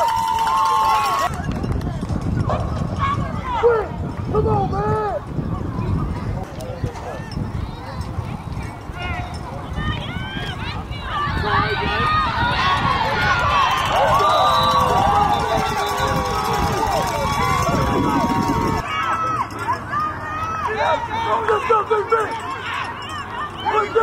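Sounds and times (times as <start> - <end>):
crowd shouting and cheering: 0.0 - 24.0.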